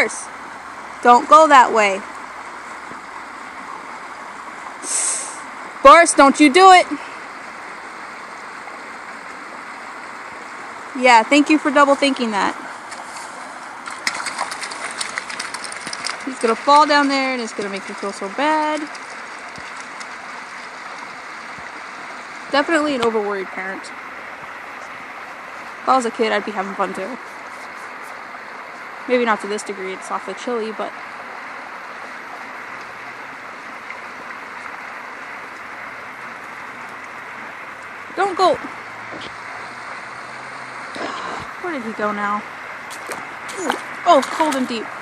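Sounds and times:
running water hiss: 0.0s - 45.0s.

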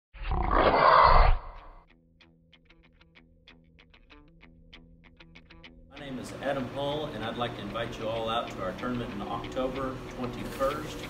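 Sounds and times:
animal roar: 0.2s - 1.8s.

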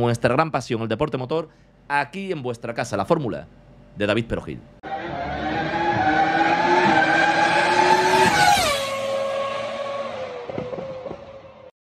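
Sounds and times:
racing car passing at speed: 4.9s - 11.7s.

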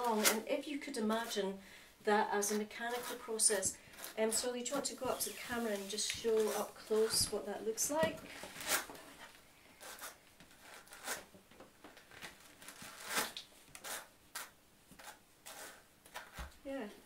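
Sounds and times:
hand carders scratchy brushing: 2.4s - 7.4s, 8.3s - 11.3s, 12.6s - 16.4s.

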